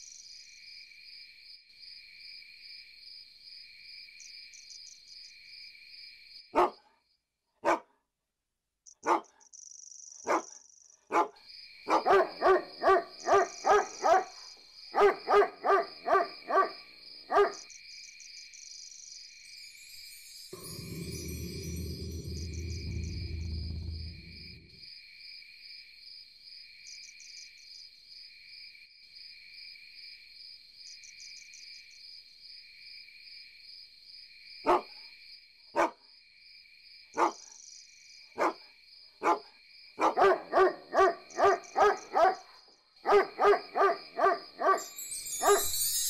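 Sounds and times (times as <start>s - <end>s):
crickets chirping: 0.0s - 7.2s, 8.9s - 46.0s
dog barking: 6.6s - 7.0s, 7.6s - 8.0s, 9.0s - 9.4s, 10.2s - 17.7s, 34.6s - 35.0s, 35.8s - 36.0s, 37.2s - 37.4s, 38.4s - 45.7s.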